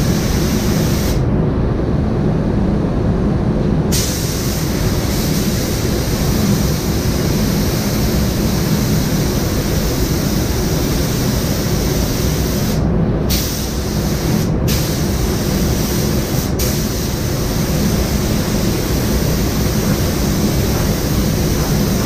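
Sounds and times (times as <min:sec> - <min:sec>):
ventilation rumble: 0:00.0 - 0:22.0
paint spray gun hissing: 0:03.9 - 0:22.0.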